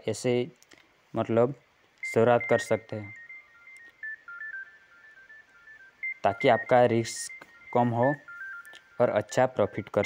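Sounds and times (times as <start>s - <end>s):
smartphone ringtone: 2.0s - 10.0s.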